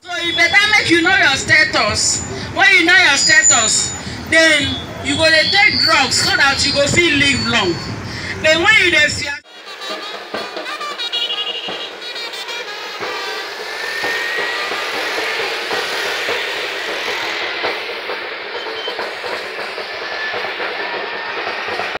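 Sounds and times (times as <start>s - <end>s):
passing road traffic: 0.0s - 22.0s
faint rising whistle: 3.1s - 8.0s, 13.7s - 22.0s
drum beating: 8.6s - 22.0s.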